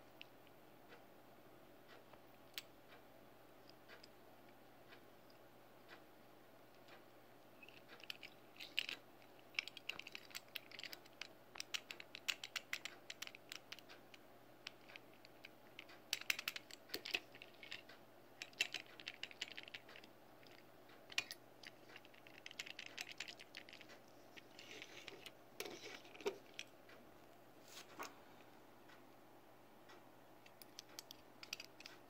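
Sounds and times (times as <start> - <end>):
metal toy clicks and rattles: 7.6 - 14.0, 14.6 - 26.7, 30.4 - 32.0.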